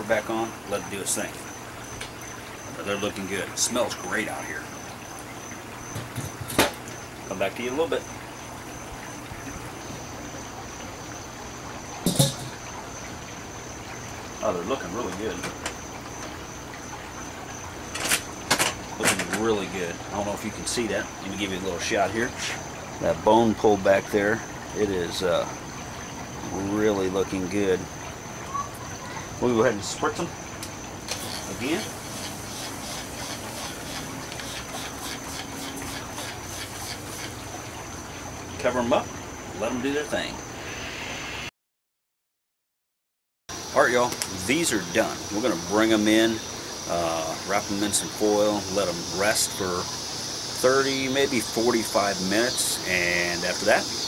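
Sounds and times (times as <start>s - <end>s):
outdoor background hiss: 0.0s - 41.5s, 43.5s - 54.0s
sharp knock: 12.1s - 12.6s.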